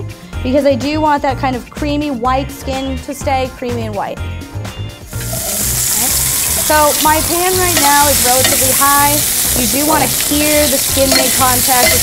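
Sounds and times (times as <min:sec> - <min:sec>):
meat sizzling in skillet: 0:05.0 - 0:12.0.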